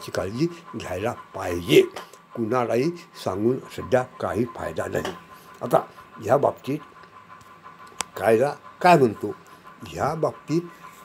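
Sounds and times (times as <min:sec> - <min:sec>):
man speaking: 0:00.0 - 0:06.9, 0:08.2 - 0:10.7.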